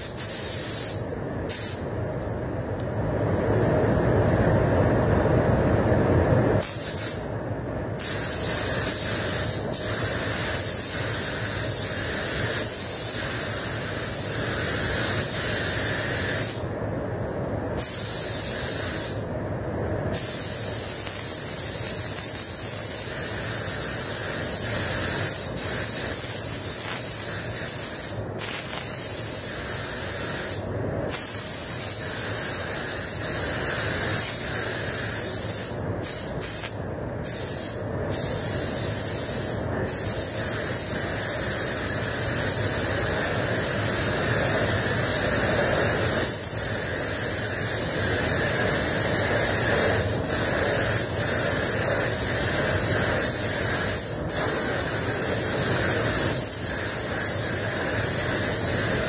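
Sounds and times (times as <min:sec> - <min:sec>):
spray gun hissing: 0:00.0 - 0:01.9, 0:06.6 - 0:07.3, 0:08.0 - 0:16.7, 0:17.8 - 0:19.3, 0:20.1 - 0:59.0.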